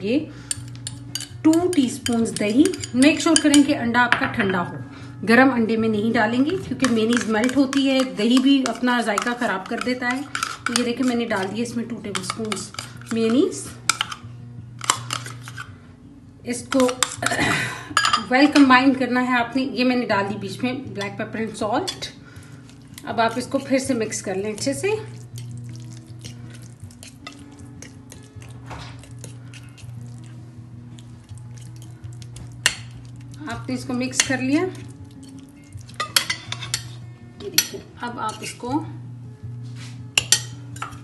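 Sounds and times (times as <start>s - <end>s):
metal spoon scraping ceramic plate: 0.4s - 3.7s, 6.7s - 14.2s, 14.8s - 15.7s, 26.2s - 30.2s, 34.1s - 38.6s.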